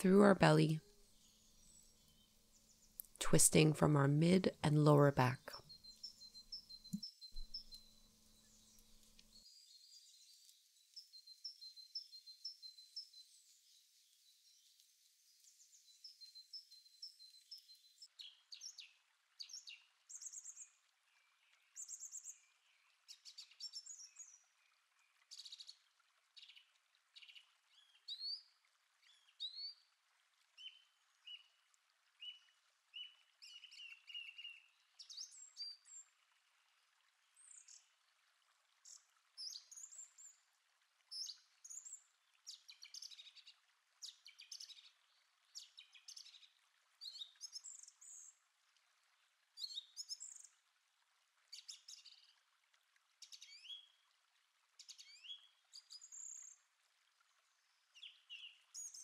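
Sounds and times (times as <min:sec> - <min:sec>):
faint songbirds chirping: 0:00.0 - 0:59.0.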